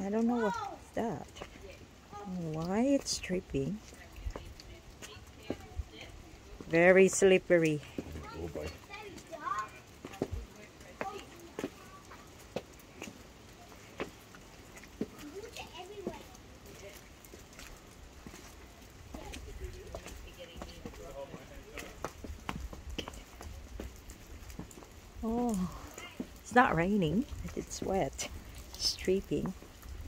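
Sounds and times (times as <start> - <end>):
footsteps on wet stone path: 0.0 - 30.0
water dripping: 0.0 - 30.0.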